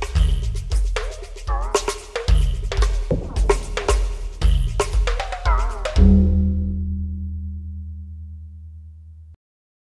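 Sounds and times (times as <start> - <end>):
low sustained music note: 6.5 - 9.3.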